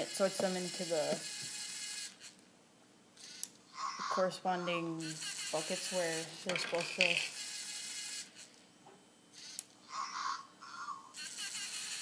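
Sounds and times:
electric motors whirring: 0:00.0 - 0:02.4, 0:03.2 - 0:08.6, 0:09.3 - 0:12.0.

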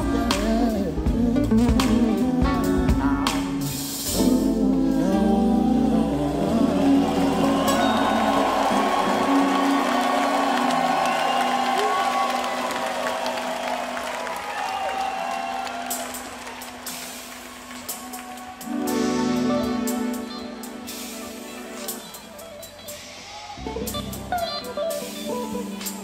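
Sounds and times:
crowd cheering and applause: 0:06.0 - 0:24.0.

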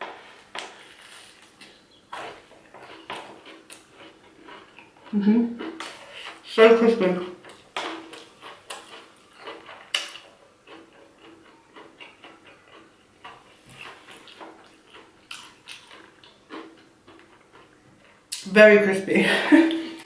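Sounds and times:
crunchy chewing: 0:00.1 - 0:18.4.

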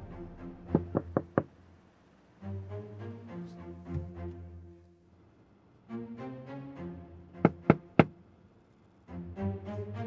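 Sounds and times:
soft background music: 0:00.0 - 0:01.5, 0:02.3 - 0:05.2, 0:05.8 - 0:10.0.

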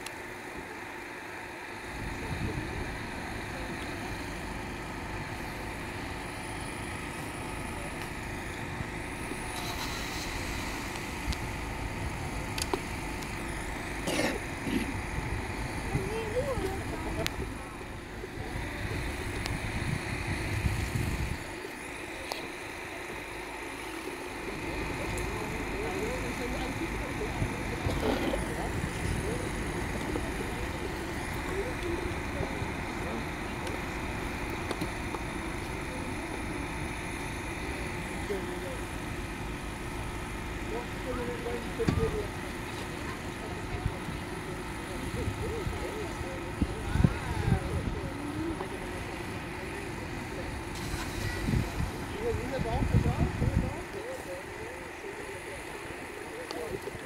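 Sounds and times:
faint voices: 0:00.0 - 0:57.0.

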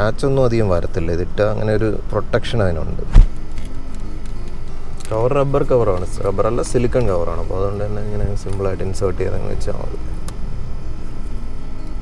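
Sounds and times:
man talking: 0:00.0 - 0:03.2, 0:05.0 - 0:10.1
low background hum: 0:00.0 - 0:12.0.

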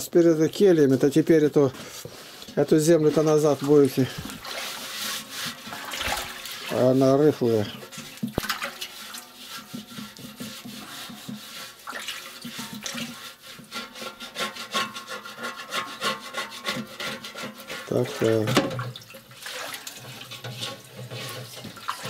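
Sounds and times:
hand scrubbing a metal pot: 0:00.0 - 0:22.0
water sloshing: 0:00.3 - 0:13.7, 0:17.8 - 0:22.0.

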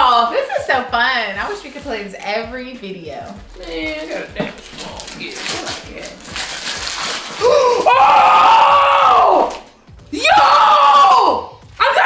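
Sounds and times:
wrapping paper tearing: 0:03.4 - 0:08.6
woman screaming excitedly: 0:07.4 - 0:12.0.

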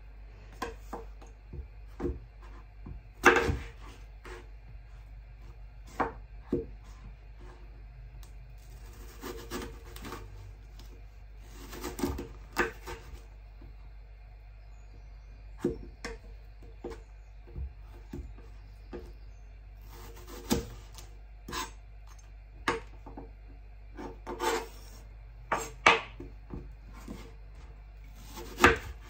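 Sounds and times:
knife slicing apple on board: 0:11.5 - 0:13.2, 0:19.8 - 0:22.9, 0:23.9 - 0:27.4, 0:28.2 - 0:29.0.

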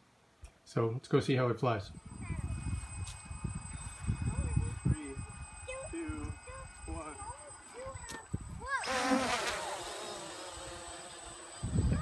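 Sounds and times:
quadcopter propellers buzzing: 0:01.9 - 0:12.0.

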